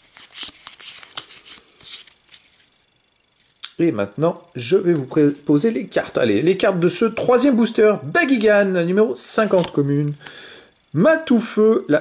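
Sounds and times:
cards rustling: 0.0s - 3.6s, 9.3s - 10.2s
man speaking: 3.7s - 10.2s, 11.0s - 12.0s.

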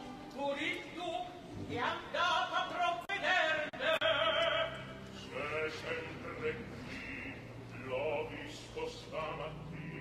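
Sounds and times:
opera singing: 0.0s - 10.0s
soft orchestral accompaniment: 0.0s - 10.0s.

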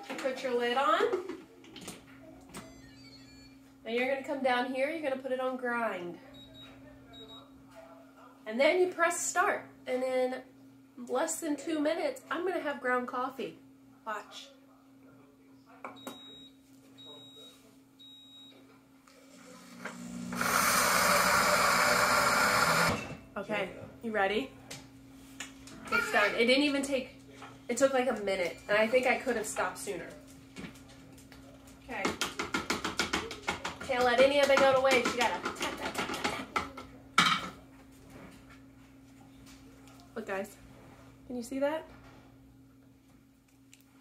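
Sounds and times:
blender grinding coffee beans: 19.1s - 23.1s.

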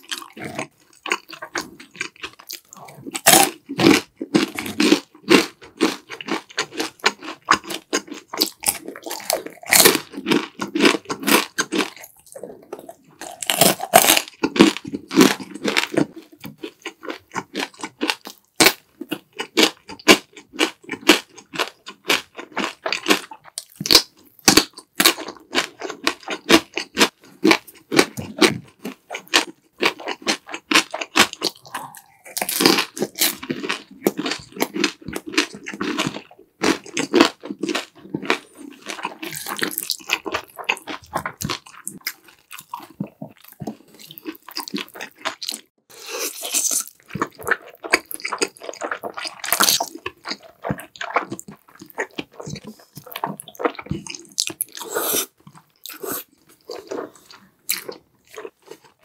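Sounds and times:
crunching and chewing radish: 0.0s - 59.0s
slurping noodles: 31.4s - 33.4s, 42.7s - 59.0s.

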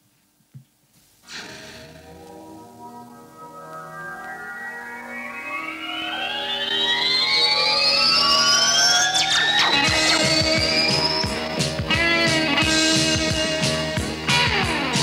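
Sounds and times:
rising effects sweep: 1.2s - 15.0s
live band playing: 9.7s - 15.0s.

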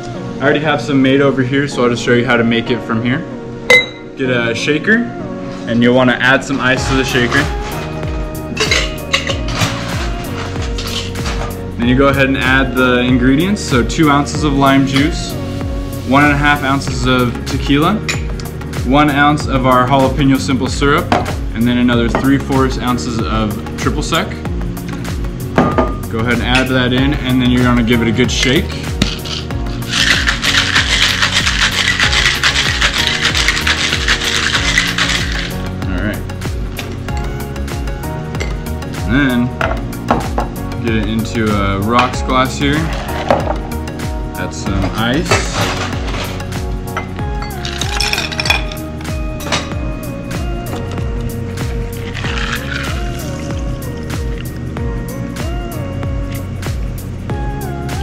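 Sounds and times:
background music: 0.0s - 58.0s
ice cubes clinking in metal tin: 29.0s - 35.6s, 44.9s - 46.5s, 47.4s - 48.8s, 52.0s - 53.3s.

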